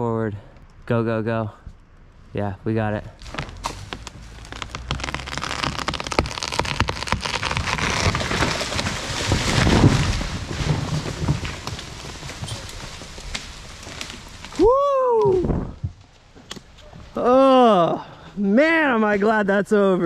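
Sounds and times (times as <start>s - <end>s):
tree trunk crashing to ground: 3.2s - 16.1s
breaking wood crackle: 3.2s - 16.6s
dead tree cracking and snapping: 3.2s - 16.7s.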